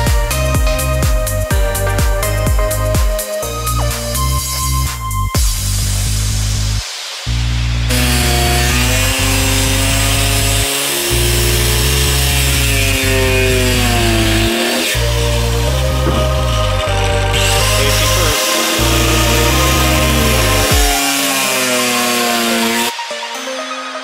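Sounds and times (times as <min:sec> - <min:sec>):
electronic music with heavy bass: 0:00.0 - 0:23.4
angle grinder cutting wood: 0:07.9 - 0:23.0.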